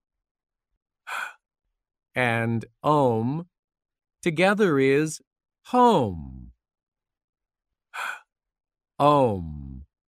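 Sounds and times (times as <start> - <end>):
quick breath intake: 1.1 - 1.4.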